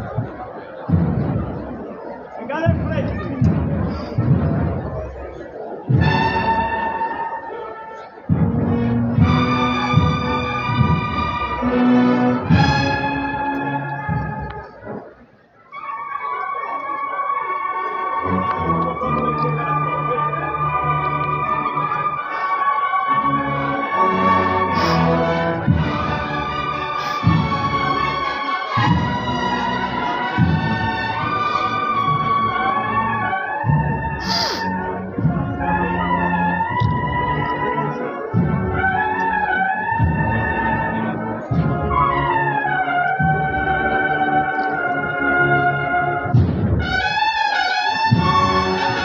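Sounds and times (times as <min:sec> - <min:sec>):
steady drum beats: 0:00.0 - 0:07.3, 0:08.2 - 0:15.3, 0:23.8 - 0:37.6, 0:38.3 - 0:44.1, 0:46.2 - 0:49.0
brass band playing a slow march: 0:00.0 - 0:49.0.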